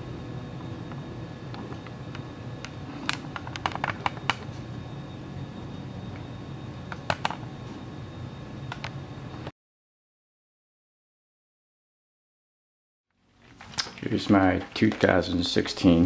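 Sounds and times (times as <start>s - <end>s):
low room hum: 0.0s - 9.5s, 13.1s - 16.0s.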